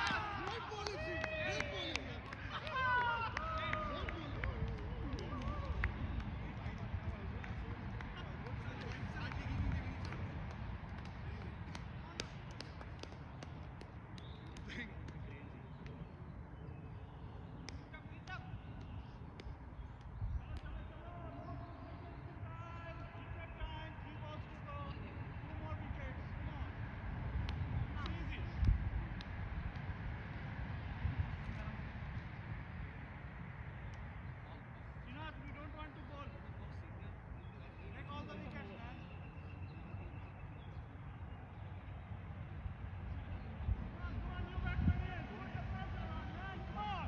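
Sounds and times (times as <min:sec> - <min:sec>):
distant people calling out: 0:00.0 - 0:26.8, 0:43.1 - 0:47.0.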